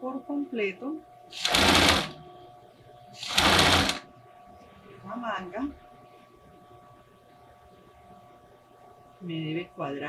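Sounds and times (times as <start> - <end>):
sewing machine stitching: 1.4 - 2.2, 3.2 - 4.0.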